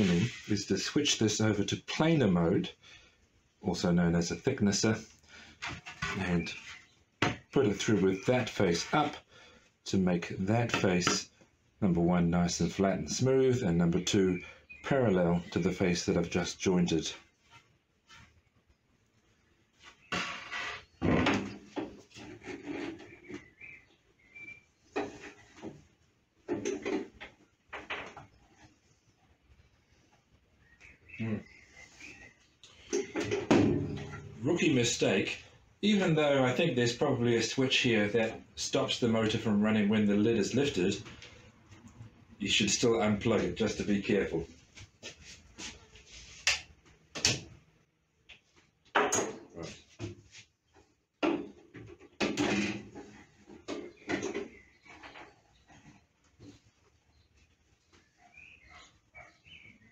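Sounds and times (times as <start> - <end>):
machine clunks and metallic rattles: 33.2 - 34.5.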